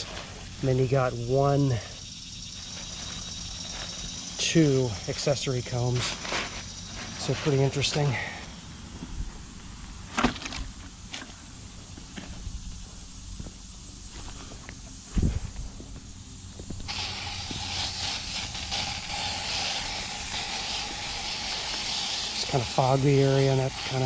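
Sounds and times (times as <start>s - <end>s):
hand-held sprayer hissing: 0.0s - 8.5s, 16.8s - 24.0s.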